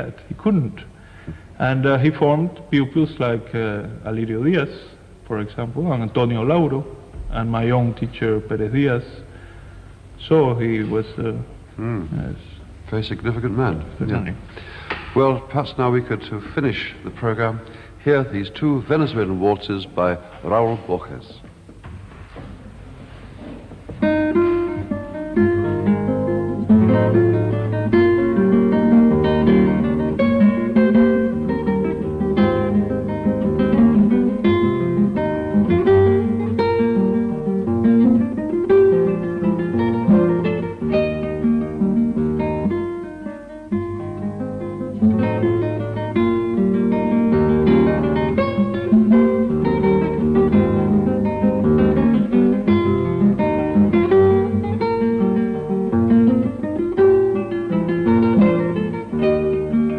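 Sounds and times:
solo classical guitar waltz: 22.8s - 59.9s.

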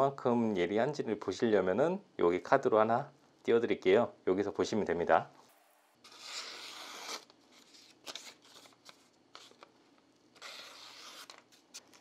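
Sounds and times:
knife slicing paper: 6.1s - 8.8s, 10.4s - 12.0s
paper crackles: 7.0s - 9.7s.

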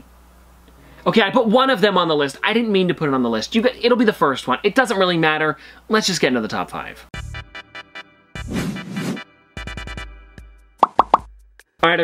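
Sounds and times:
cartoon pop sound effects: 10.8s - 11.3s.

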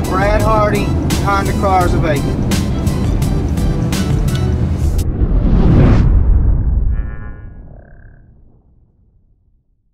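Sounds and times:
deep boom: 2.2s - 9.9s.

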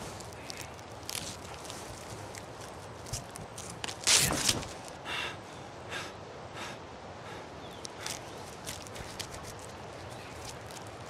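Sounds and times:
faint rustles: 0.0s - 5.0s, 7.7s - 11.0s
steady low hiss: 0.0s - 11.0s.

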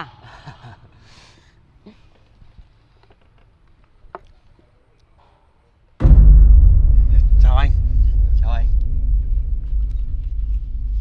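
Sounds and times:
loud low rumble: 6.0s - 11.0s.

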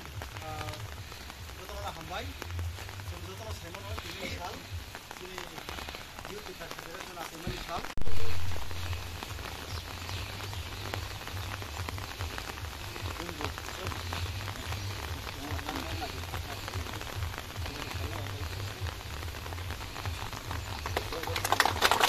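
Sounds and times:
light rain pattering: 0.0s - 22.0s.

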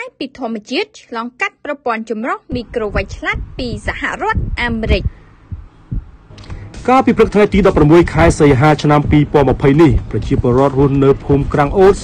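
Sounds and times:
person speaking: 2.5s - 5.1s
soft low thumps: 2.5s - 12.0s.

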